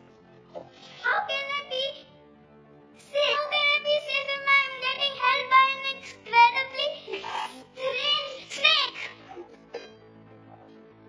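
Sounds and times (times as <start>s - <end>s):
girl laughing: 7.1s - 7.7s.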